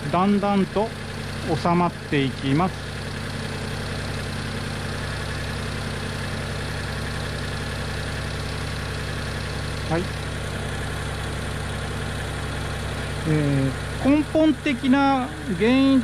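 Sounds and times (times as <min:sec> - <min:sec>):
car engine idling: 0:00.0 - 0:16.0
radiator electric fan running: 0:00.0 - 0:16.0.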